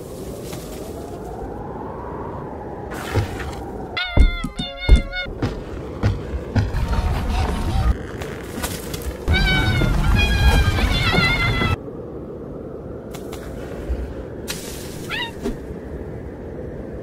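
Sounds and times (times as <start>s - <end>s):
high wavering cartoon vocal cries: 4.0s - 5.3s.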